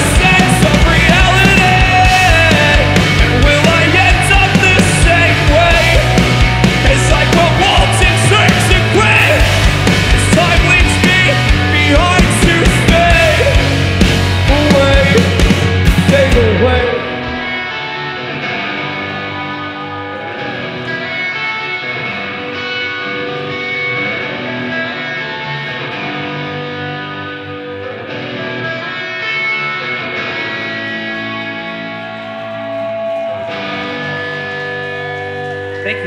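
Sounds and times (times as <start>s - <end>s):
electric guitar sustained chords: 0.0s - 36.0s.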